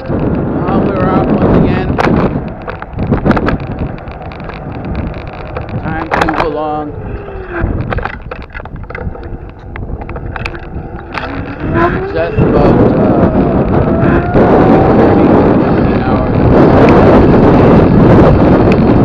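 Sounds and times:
road noise: 0.0s - 19.0s
wind on microphone: 0.0s - 19.0s
falling tone: 10.0s - 16.4s.

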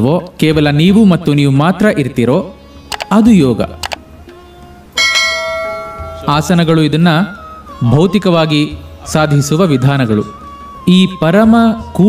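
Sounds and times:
faint background music: 0.0s - 12.0s
bell ringing: 5.0s - 6.8s.

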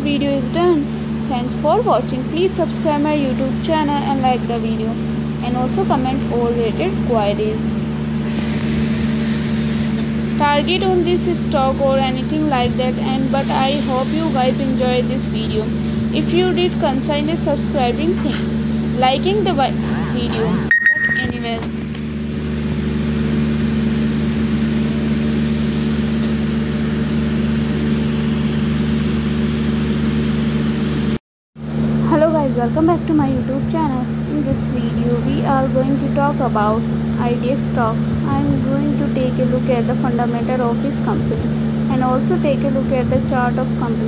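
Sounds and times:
low machine hum: 0.0s - 44.0s.

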